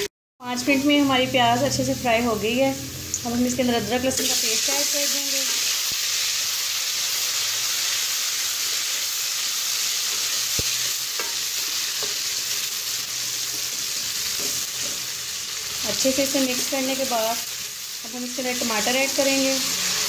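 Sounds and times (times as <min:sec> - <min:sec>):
onions sizzling in hot oil: 0:00.5 - 0:20.0.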